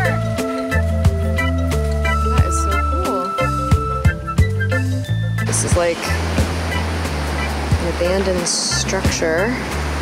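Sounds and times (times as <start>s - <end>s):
background music with beat and bass: 0.0s - 8.2s.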